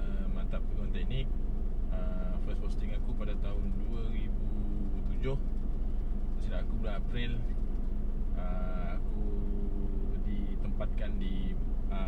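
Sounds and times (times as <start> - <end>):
steady hum: 0.0 - 12.0
vehicle engine rumble: 0.0 - 12.0.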